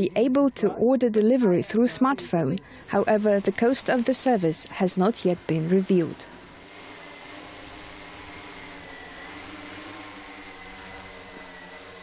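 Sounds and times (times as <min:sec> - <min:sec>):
drone propellers buzzing: 0:02.8 - 0:12.0.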